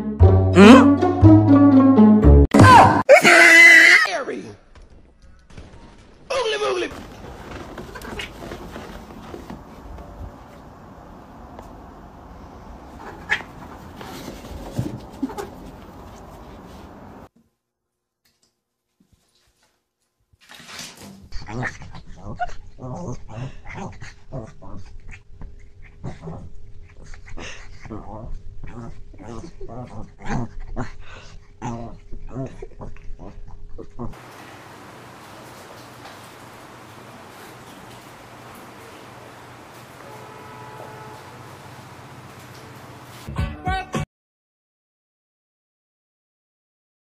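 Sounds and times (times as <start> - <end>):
small dog crying: 3.1 - 4.1
steady hiss: 34.2 - 43.3
cat meowing: 40.0 - 41.5.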